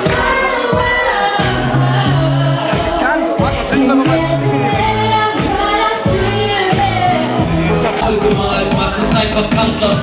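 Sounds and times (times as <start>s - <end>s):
girl singing into microphone: 0.0s - 8.0s
amplified backing music: 0.0s - 10.0s.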